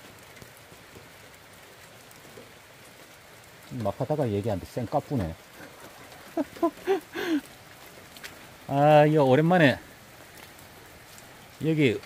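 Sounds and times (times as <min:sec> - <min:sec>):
faint drip ticks: 0:00.0 - 0:12.0
rain falling on wet ground: 0:00.0 - 0:12.0.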